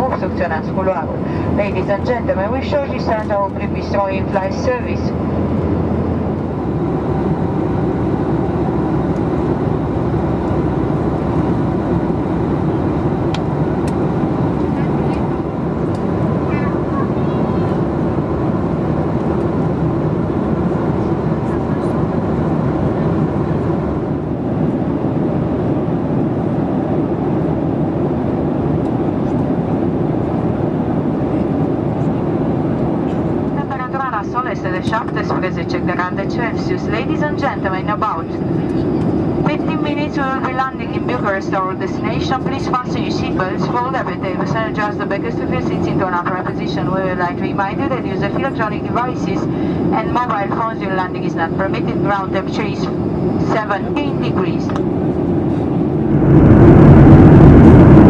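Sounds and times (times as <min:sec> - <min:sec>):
airplane cabin engine rumble: 0:00.0 - 0:58.0.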